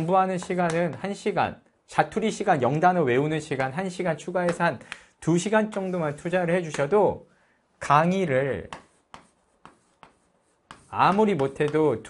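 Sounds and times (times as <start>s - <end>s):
chalk tapping on chalkboard: 0.0s - 1.2s, 4.4s - 4.7s, 6.6s - 6.9s, 8.6s - 12.0s.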